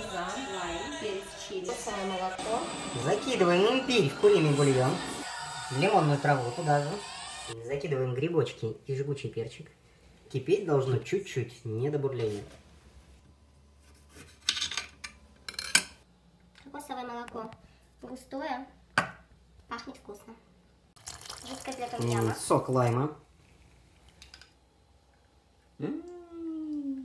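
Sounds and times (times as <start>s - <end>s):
kitchenware scraping: 14.0s - 16.0s.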